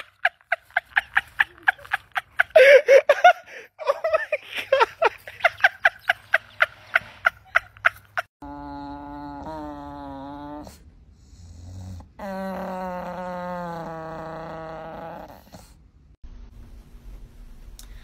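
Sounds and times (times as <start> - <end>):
dog moaning: 8.4 - 10.8, 11.5 - 15.8.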